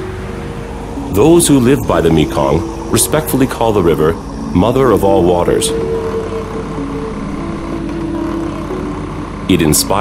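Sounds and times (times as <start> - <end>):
outboard motors droning: 0.0 - 10.0.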